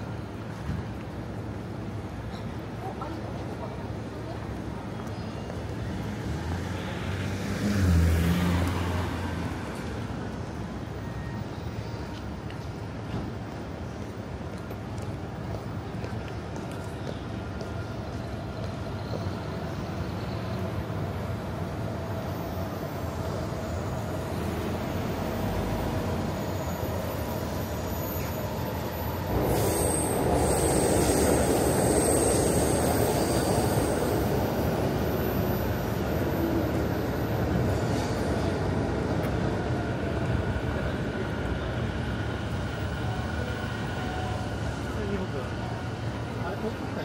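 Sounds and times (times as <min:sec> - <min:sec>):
train running on rails: 0:00.0 - 0:47.0
high wheel squeal: 0:19.1 - 0:38.8.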